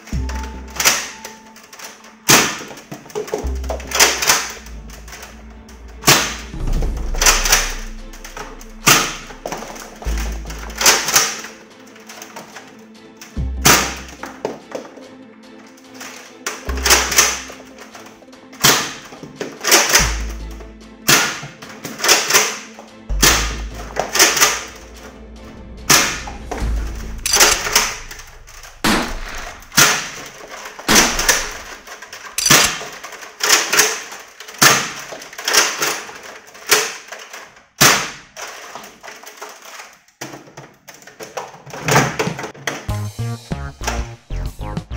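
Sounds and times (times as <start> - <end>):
background music: 0.0 - 39.8, 41.2 - 44.9
toy blaster clacking and firing: 0.8 - 5.3, 7.1 - 12.6, 18.6 - 20.3, 21.1 - 24.8, 27.2 - 40.1.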